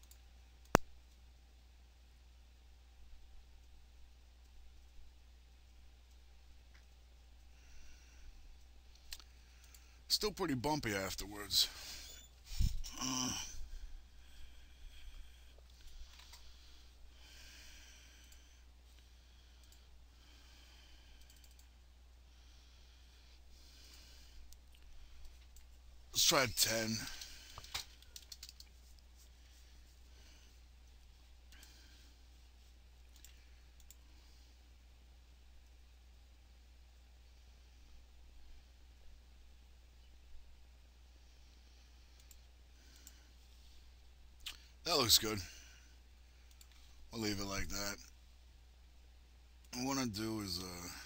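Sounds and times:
faint computer mouse clicks: 0.0s - 1.2s, 21.2s - 21.7s, 33.1s - 34.0s, 42.1s - 43.2s
soft computer clicks: 0.0s - 1.2s, 8.6s - 9.9s, 19.6s - 19.9s, 21.2s - 21.8s, 26.9s - 28.8s, 33.1s - 34.0s, 42.1s - 43.2s, 46.4s - 46.8s
steady low hum: 0.0s - 51.0s
man speaking: 10.1s - 12.0s, 26.1s - 27.2s, 44.9s - 45.5s, 47.1s - 48.0s, 49.7s - 51.0s.

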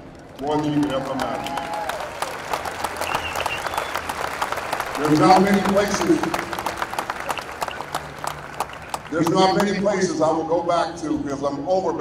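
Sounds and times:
crowd applause: 0.3s - 10.2s.

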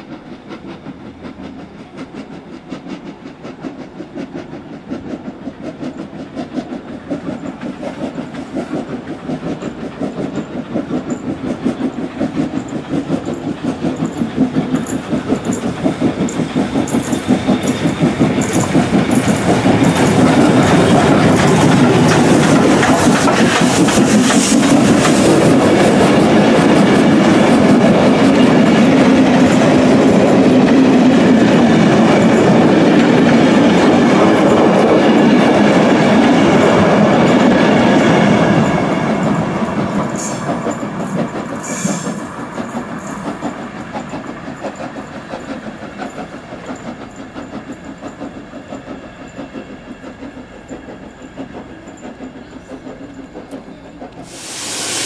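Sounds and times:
steam locomotive exhaust chuffing: 0.0s - 55.0s
coaches clattering over rail joints: 0.5s - 54.3s.

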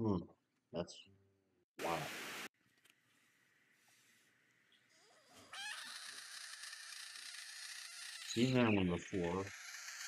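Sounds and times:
frog distress scream: 4.9s - 8.5s.

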